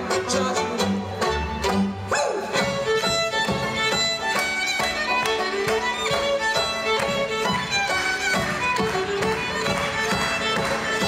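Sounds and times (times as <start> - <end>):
banjo plucking: 0.0 - 11.0
double bass plucking: 0.0 - 11.0
fiddle playing melody: 0.0 - 11.0.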